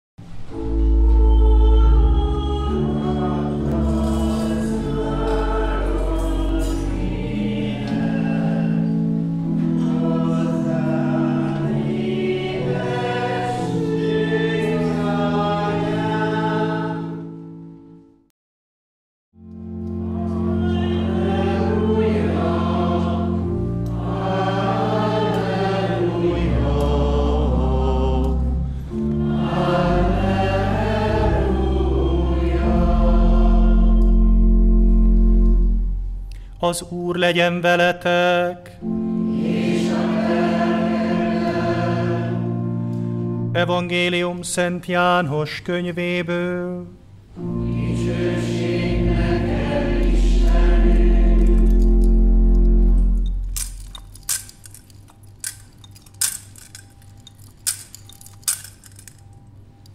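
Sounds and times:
organ chords: 0.2s - 18.3s, 19.4s - 59.9s
choir singing a hymn: 0.5s - 17.7s, 19.9s - 35.8s, 36.7s - 44.0s, 47.4s - 53.4s.

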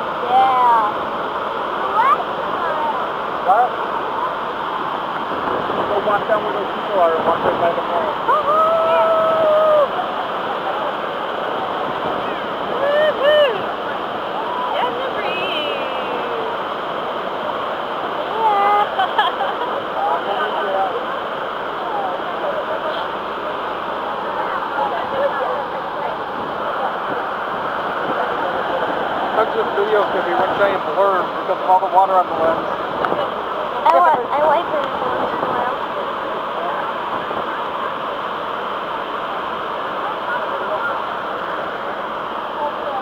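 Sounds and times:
waterfall roar: 0.0s - 43.0s.

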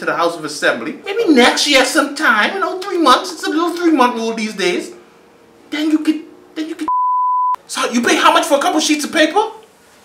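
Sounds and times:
high-pitched censor bleep: 6.9s - 7.6s.

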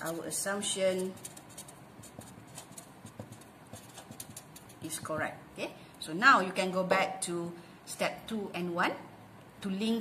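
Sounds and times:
marker scratching on paper: 0.0s - 5.3s.

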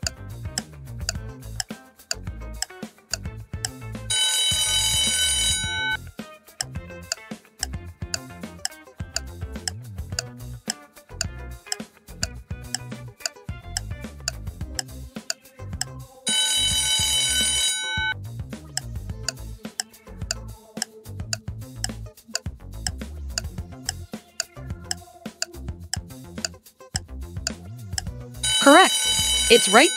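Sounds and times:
background music: 0.0s - 18.1s, 28.0s - 29.9s
alarm clock ringing: 4.1s - 6.0s, 16.3s - 18.1s, 28.4s - 29.9s.

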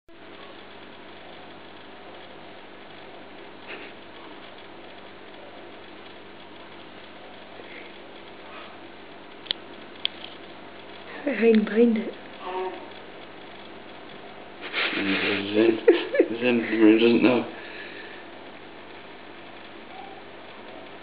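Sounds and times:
aquarium equipment humming: 0.1s - 21.0s.

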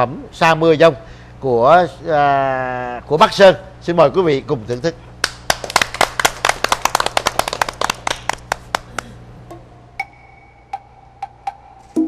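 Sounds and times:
group clapping hands: 5.2s - 9.2s.

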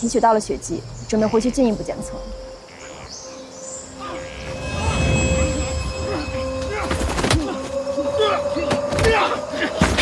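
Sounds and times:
steady held tone: 3.8s - 8.7s.

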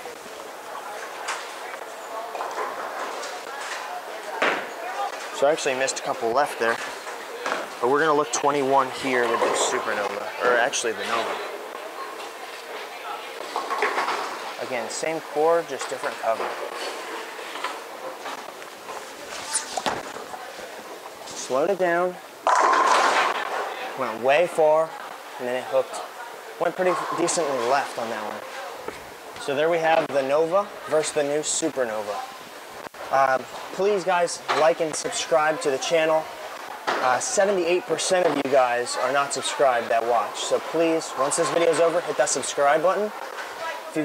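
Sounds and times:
bowling ball crashing into pins: 22.4s - 23.8s.

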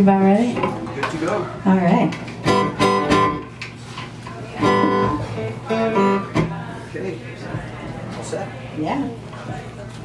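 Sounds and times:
acoustic guitar chords strummed: 2.4s - 3.6s, 4.6s - 6.6s.

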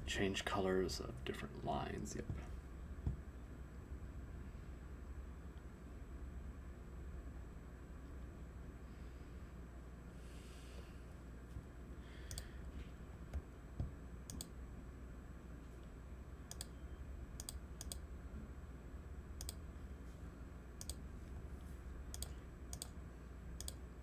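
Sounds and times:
low room hum: 0.0s - 24.0s
computer mouse clicking: 12.3s - 12.5s, 14.3s - 14.5s, 16.5s - 16.7s, 17.4s - 18.0s, 19.4s - 19.6s, 20.8s - 21.0s, 22.1s - 23.0s, 23.6s - 23.8s.

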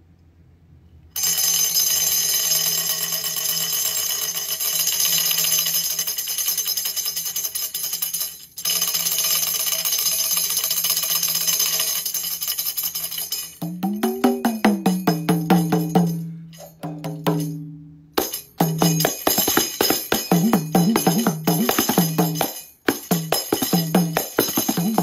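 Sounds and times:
frame drum rattling: 13.6s - 25.0s.

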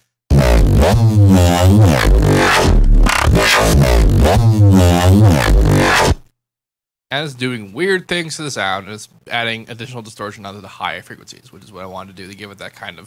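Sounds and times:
distorted synth bass phrase: 0.3s - 6.2s.

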